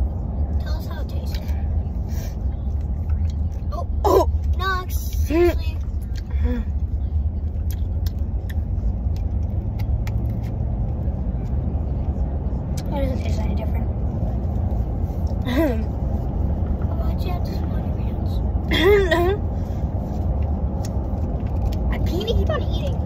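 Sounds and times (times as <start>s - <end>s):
car engine rumble: 0.0s - 23.0s
road noise: 0.0s - 23.0s.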